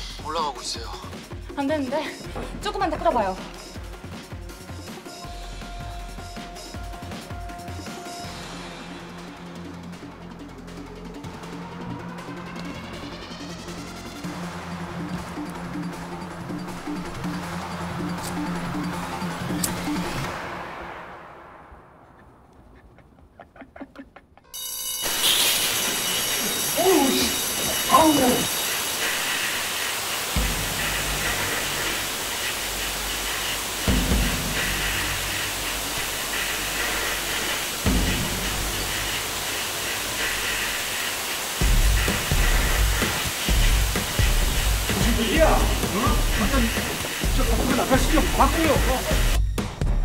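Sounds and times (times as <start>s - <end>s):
dramatic music: 0.0s - 21.9s, 24.6s - 50.0s
fire alarm bell ringing: 24.5s - 33.9s
people shouting: 26.4s - 28.5s.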